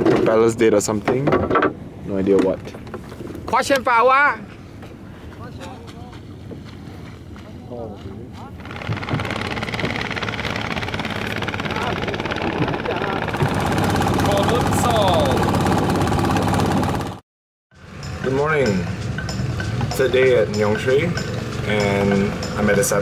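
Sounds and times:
boat engine running: 8.3 - 17.2, 17.8 - 23.0.

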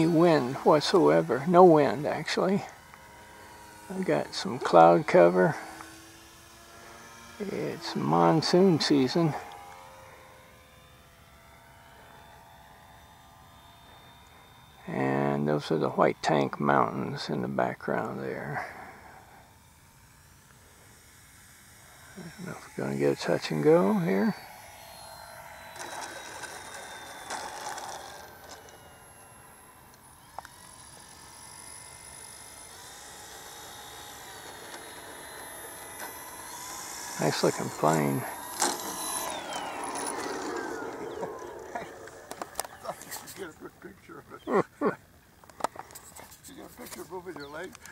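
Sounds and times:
model airplane motor droning: 0.0 - 47.9.

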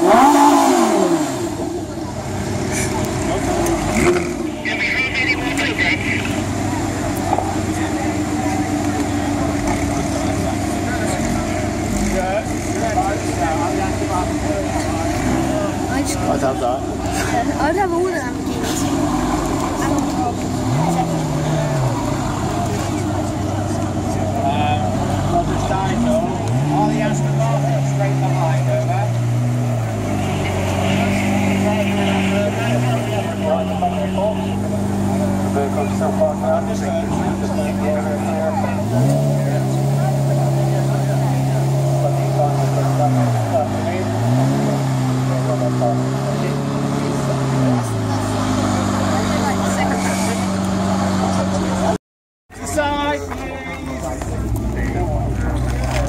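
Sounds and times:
car engine running: 0.0 - 56.0
crowd chatter: 0.0 - 56.0.

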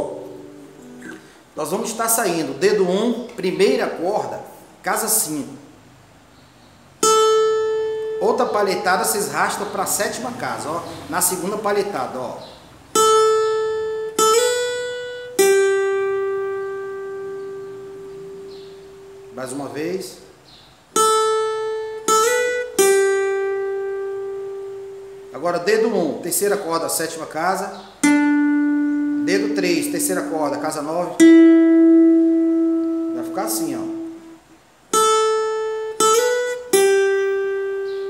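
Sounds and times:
acoustic guitar picked notes: 0.0 - 38.0.

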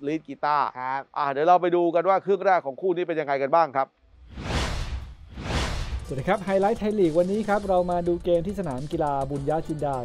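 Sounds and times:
low rumble: 4.2 - 6.3
whooshes: 4.2 - 6.6.

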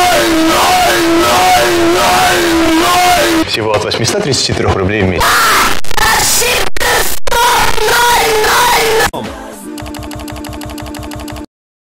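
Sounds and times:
steady tone: 0.0 - 3.4
stuttering looped buzz: 0.0 - 3.4.

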